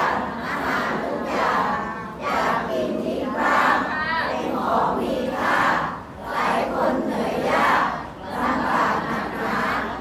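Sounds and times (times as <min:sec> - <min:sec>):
crowd chanting in unison: 0:00.0 - 0:10.0.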